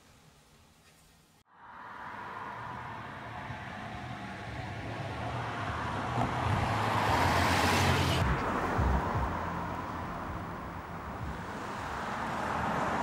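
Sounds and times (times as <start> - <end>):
car passing by: 1.5 - 13.0.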